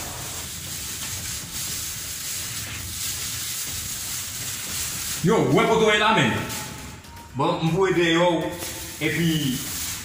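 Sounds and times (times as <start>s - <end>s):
steady hiss: 0.0s - 7.0s, 8.4s - 10.0s.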